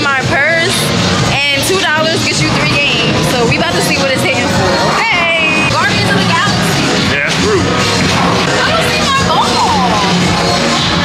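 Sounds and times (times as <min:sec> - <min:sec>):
woman talking: 0:00.0 - 0:06.8, 0:08.5 - 0:10.2
background music: 0:00.0 - 0:11.0.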